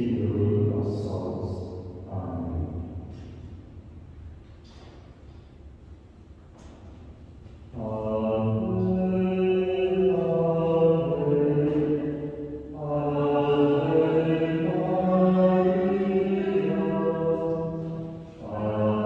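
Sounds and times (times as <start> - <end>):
slow sung chant: 7.6 - 19.0.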